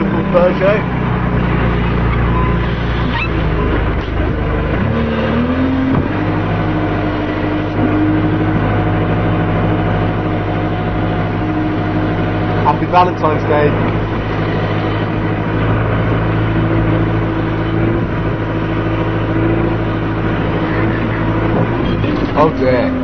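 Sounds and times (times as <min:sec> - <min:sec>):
tractor loader engine running: 0:00.0 - 0:23.0.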